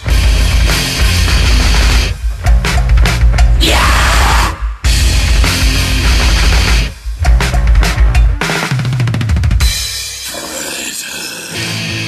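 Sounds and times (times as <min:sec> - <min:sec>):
distorted electric guitar chords: 0:00.0 - 0:10.3, 0:11.5 - 0:12.0
metal drumming: 0:00.0 - 0:10.4.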